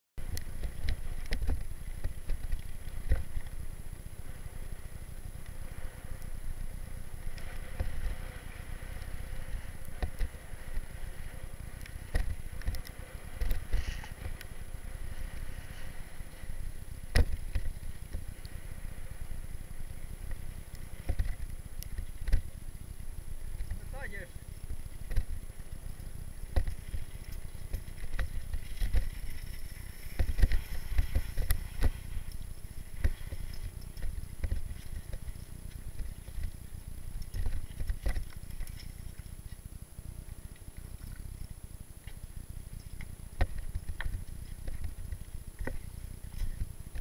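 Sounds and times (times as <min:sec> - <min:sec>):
wind and tyre rumble: 0:00.2 - 0:47.0
bike knocks and rattles: 0:09.0 - 0:18.4, 0:20.2 - 0:22.6, 0:24.7 - 0:39.3.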